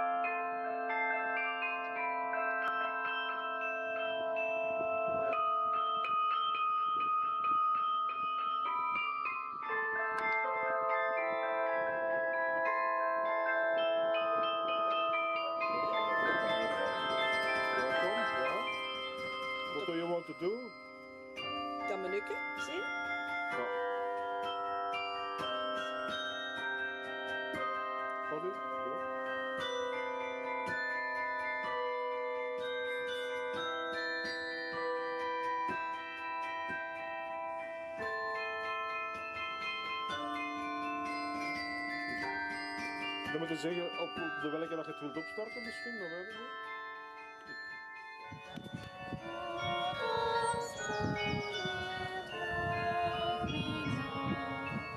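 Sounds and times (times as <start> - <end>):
carillon bells playing a melody: 0.0 - 54.9.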